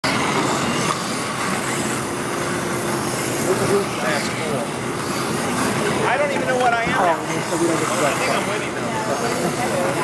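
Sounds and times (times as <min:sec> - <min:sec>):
slot cars whirring: 0:00.0 - 0:10.0
crowd noise: 0:02.0 - 0:10.0.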